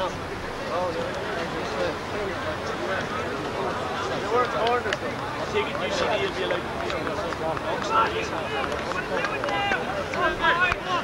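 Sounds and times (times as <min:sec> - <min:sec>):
players and spectators calling: 0:00.0 - 0:11.0.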